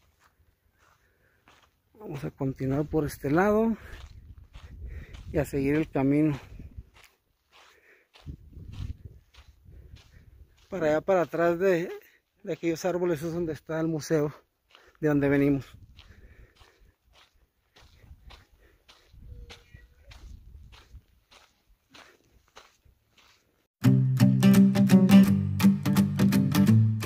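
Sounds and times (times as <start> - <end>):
footsteps on dirt path: 0.0 - 23.8.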